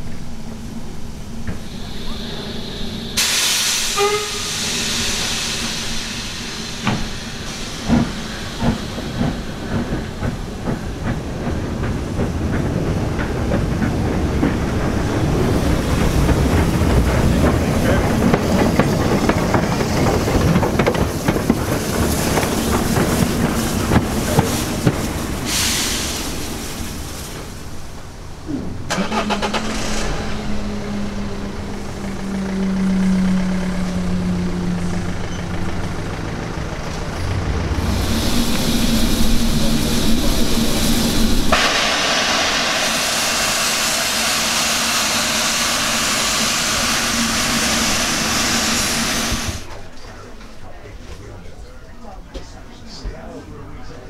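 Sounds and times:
steam hissing: 0.5 - 49.9
wheels and rods knocking on rails: 7.8 - 25.2.

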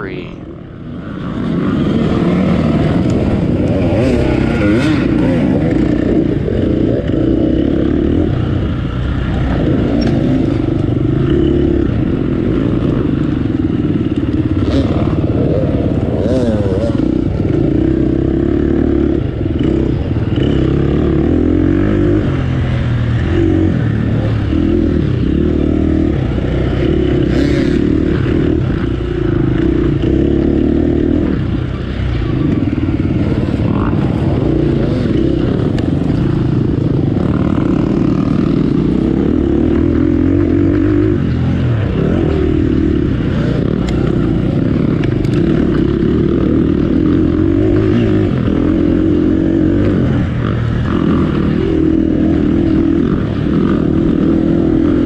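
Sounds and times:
off-road motorcycle engine revving: 0.0 - 55.0.

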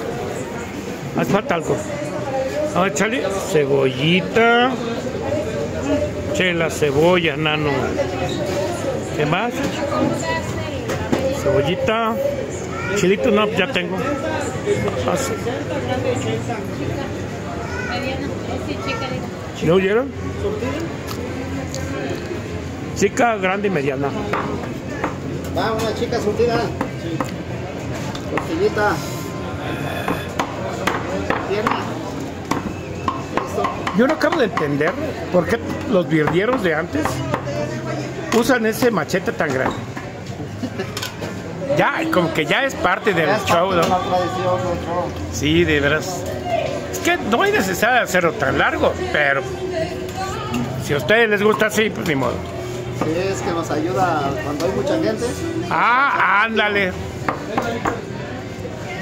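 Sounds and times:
background talk: 0.0 - 59.0.

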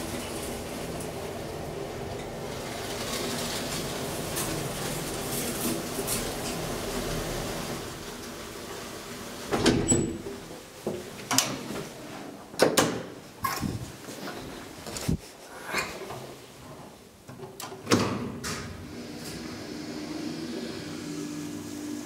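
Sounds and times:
elevator hum and rumble: 0.0 - 10.6
elevator clunks: 9.5 - 10.4.

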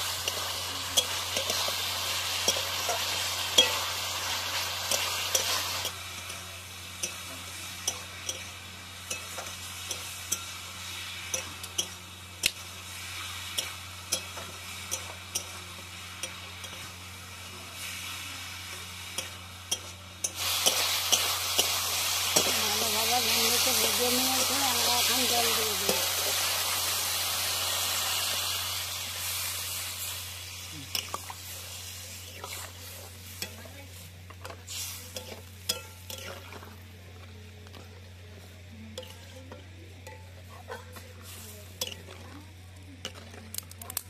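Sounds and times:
food sizzling in a pan: 0.0 - 44.0.

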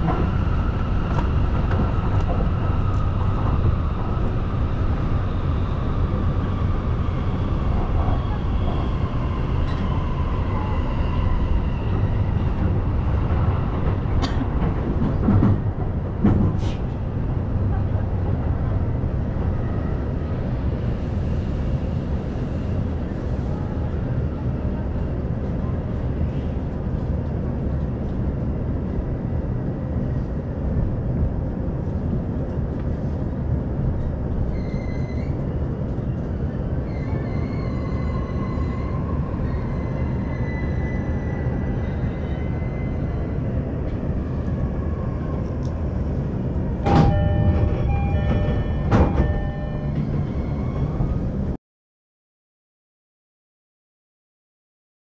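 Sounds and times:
train wheels rumbling on rail: 0.0 - 51.6.

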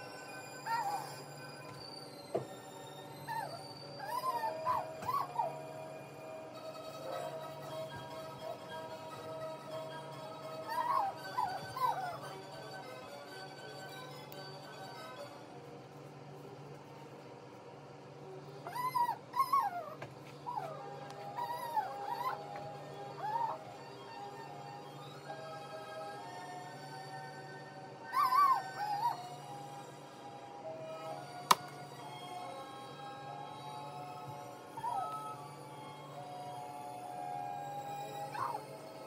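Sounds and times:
faint background music: 0.0 - 39.0
dog whining: 0.6 - 1.3, 3.2 - 5.7, 10.6 - 12.4, 18.6 - 24.5, 28.1 - 29.4, 34.7 - 35.5, 38.0 - 38.8.

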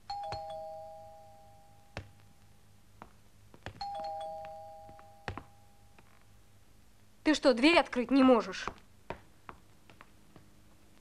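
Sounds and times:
two-tone doorbell chime: 0.0 - 2.2, 3.8 - 6.0.

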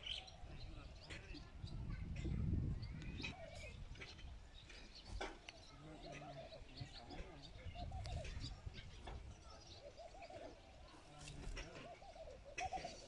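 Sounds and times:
birds calling with curving calls: 0.0 - 1.8, 2.8 - 13.0
birds chirping: 0.0 - 13.0.

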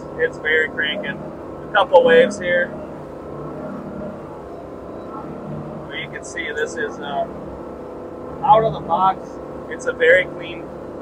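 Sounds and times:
boat engine running under load: 0.0 - 11.0.

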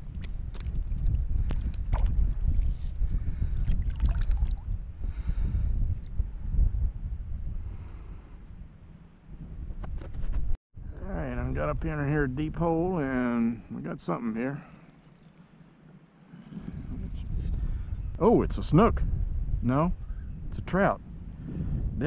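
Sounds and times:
wind buffeting microphone: 0.0 - 13.7, 16.5 - 22.0.

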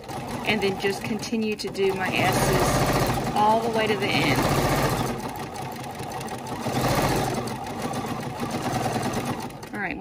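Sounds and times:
sewing machine stitching: 0.0 - 10.0.

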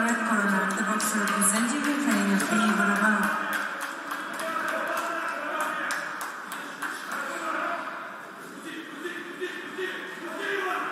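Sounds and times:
indistinct voices: 0.0 - 10.9.

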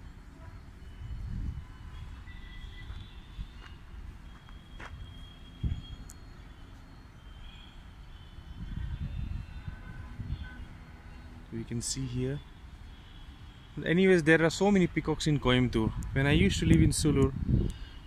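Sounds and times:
faint high chirping: 0.0 - 13.8.

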